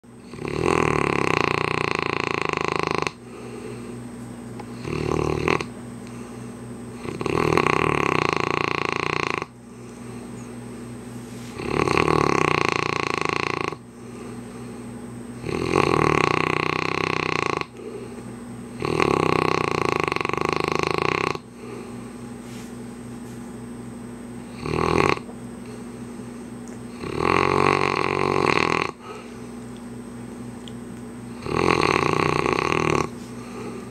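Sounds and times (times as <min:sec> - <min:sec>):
dog snoring: 0:00.2 - 0:04.0, 0:04.6 - 0:05.7, 0:07.0 - 0:09.6, 0:11.5 - 0:14.4, 0:15.4 - 0:22.0, 0:24.4 - 0:25.3, 0:26.9 - 0:29.3, 0:31.3 - 0:33.9.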